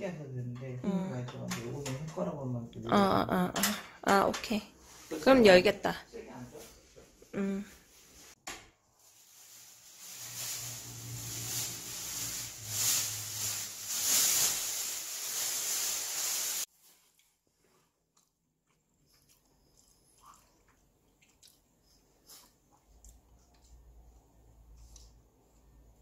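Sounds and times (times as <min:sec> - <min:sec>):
plastic wrapping crinkling: 0:09.0 - 0:17.2.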